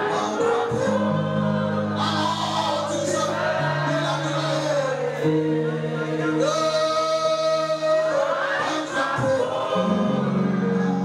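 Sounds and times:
congregation singing worship song: 0.0s - 11.0s.

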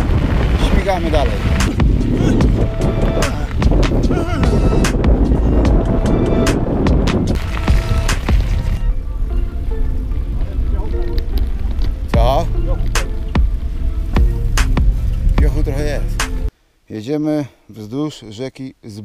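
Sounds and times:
bike tyres rumbling on gravel: 0.0s - 16.1s
wind on microphone: 0.0s - 16.5s
background music: 0.6s - 16.5s.

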